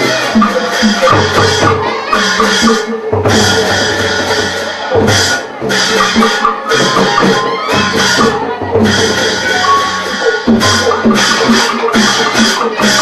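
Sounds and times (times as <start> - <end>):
driving drums and percussion: 0.0 - 13.0
traditional ensemble playing loudly: 0.0 - 13.0.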